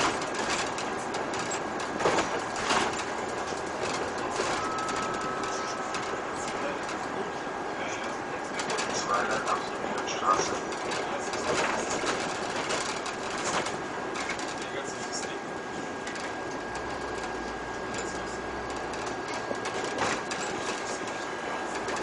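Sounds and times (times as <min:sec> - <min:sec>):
rattles and clicks: 0:00.0 - 0:15.4, 0:16.0 - 0:22.0
bus engine and road noise: 0:00.0 - 0:22.0
faint high whine: 0:04.2 - 0:08.2.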